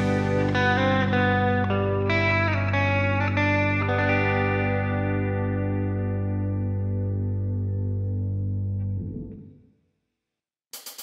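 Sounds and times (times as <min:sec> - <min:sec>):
effected electric guitar: 0:00.0 - 0:09.6.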